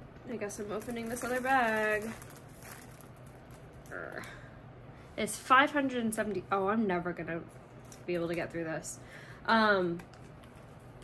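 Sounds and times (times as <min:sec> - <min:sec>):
plastic bag crinkling: 0:00.4 - 0:04.4.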